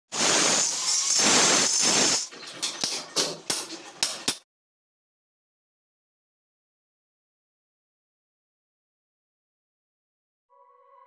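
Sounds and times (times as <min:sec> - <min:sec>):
angle grinder cutting masonry: 0:00.2 - 0:02.4.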